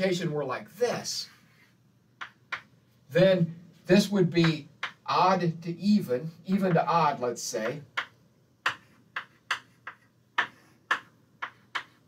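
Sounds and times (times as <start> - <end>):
chalk tapping on blackboard: 1.4 - 2.7, 4.3 - 5.1, 7.6 - 12.0.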